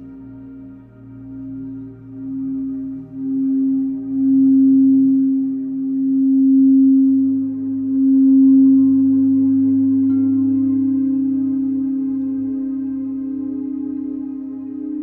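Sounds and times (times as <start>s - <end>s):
singing bowl tone: 0.0s - 15.0s.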